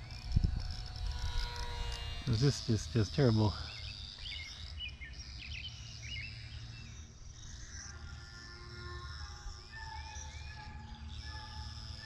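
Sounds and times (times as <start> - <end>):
wind rumbling on microphone: 0.0 - 2.4
small electric motor whine: 0.0 - 12.0.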